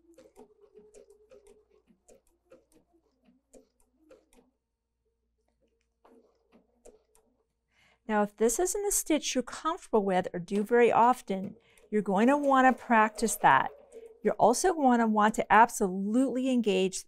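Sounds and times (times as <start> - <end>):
sewing machine motor hum: 0.0 - 4.4
sewing machine stitching: 0.0 - 4.5.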